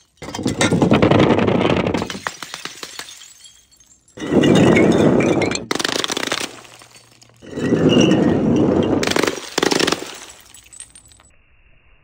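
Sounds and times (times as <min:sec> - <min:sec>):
glass jars shattering on tiles: 0:00.0 - 0:11.3
glass shards clinking: 0:02.0 - 0:11.3.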